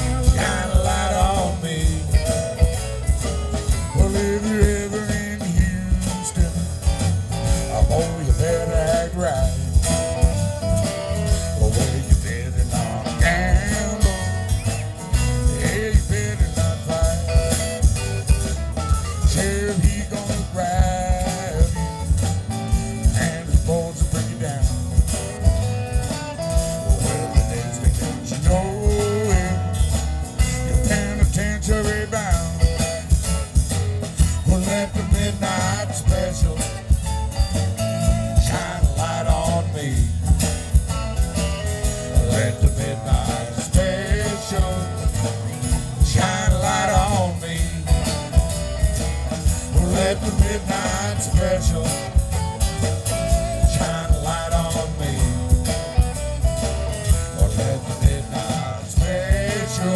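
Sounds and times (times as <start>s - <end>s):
country blues band playing: 0.0s - 59.9s
lead guitar melody: 0.0s - 59.9s
steady drum beat: 0.0s - 59.9s.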